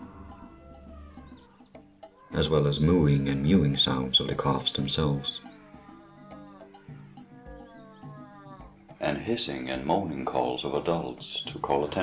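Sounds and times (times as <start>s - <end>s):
giraffe calf mewing call: 0.0s - 9.0s
soft background music: 0.0s - 12.0s.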